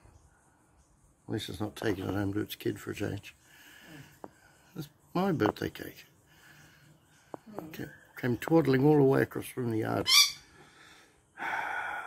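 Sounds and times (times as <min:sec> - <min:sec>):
magpie call: 0:10.0 - 0:10.5.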